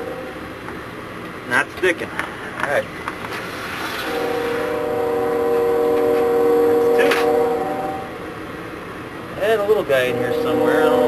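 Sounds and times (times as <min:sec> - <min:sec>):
multi-tone horn chord: 0:04.0 - 0:08.2, 0:10.0 - 0:11.0.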